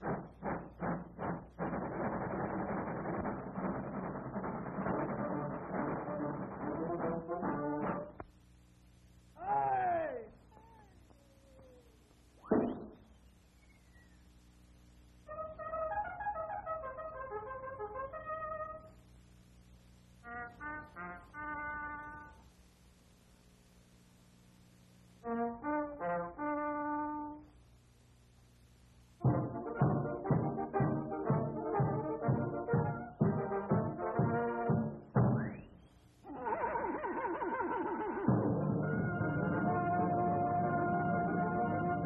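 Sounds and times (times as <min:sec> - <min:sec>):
cartoon steam locomotive chuffing: 0:00.0 - 0:07.8, 0:36.3 - 0:39.8
soundtrack low hum: 0:00.0 - 0:36.4
orchestral wind instruments: 0:04.7 - 0:08.1, 0:15.3 - 0:18.9, 0:20.2 - 0:22.4, 0:25.2 - 0:27.4, 0:29.2 - 0:35.0, 0:36.3 - 0:42.0.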